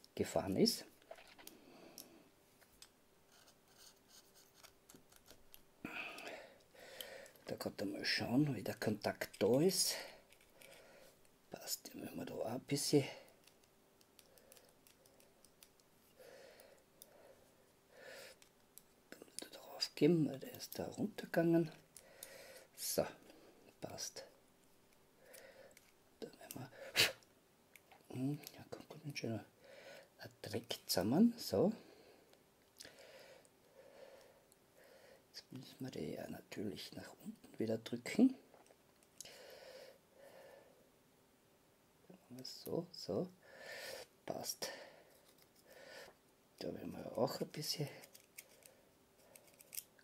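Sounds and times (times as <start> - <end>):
faint breaths: 1.5 - 2.4, 5.8 - 7.5, 9.3 - 11.8, 16.1 - 18.5, 21.7 - 24.4, 25.2 - 27.2, 29.5 - 30.2, 31.7 - 35.4, 39.2 - 40.9, 43.3 - 46.2
small plastic clicks: 13.3 - 15.9.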